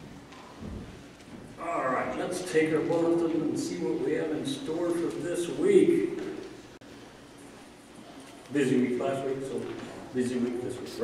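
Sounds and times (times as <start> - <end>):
soft footsteps: 0.0 - 1.6
man speaking over sound system: 1.6 - 6.5, 8.5 - 11.0.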